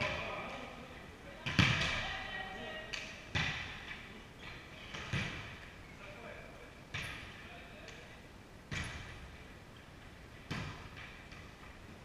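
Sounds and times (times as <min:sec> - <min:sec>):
volleyball hit by hand: 0:01.4 - 0:02.2, 0:02.9 - 0:04.0, 0:08.7 - 0:09.2, 0:10.4 - 0:11.6.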